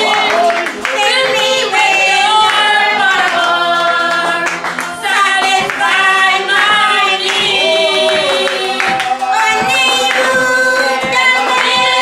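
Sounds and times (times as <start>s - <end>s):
hand clapping: 0.0s - 12.0s
women singing a worship song: 0.0s - 12.0s.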